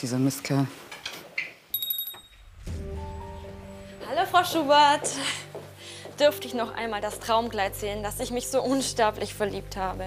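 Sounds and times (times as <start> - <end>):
background music with low tones: 2.5 - 10.0.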